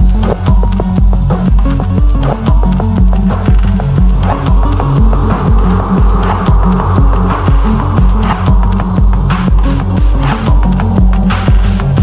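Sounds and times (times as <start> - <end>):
pulsing deep bass: 0.0 - 12.0
sustained synth tone: 3.3 - 10.8.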